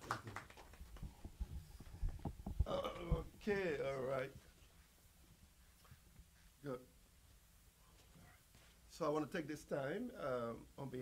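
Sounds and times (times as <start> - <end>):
soft knocks: 1.0 - 3.6
man making wordless vocal sounds: 2.6 - 4.4.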